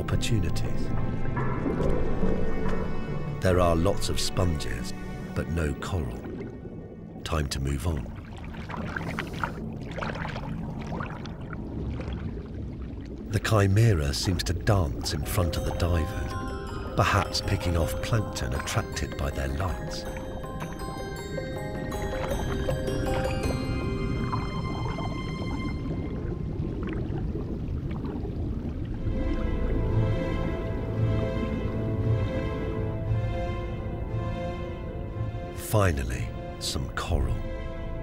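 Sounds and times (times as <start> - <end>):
water bubbling underwater: 8.0 - 13.3, 14.0 - 32.0
held music chord: 14.8 - 26.4.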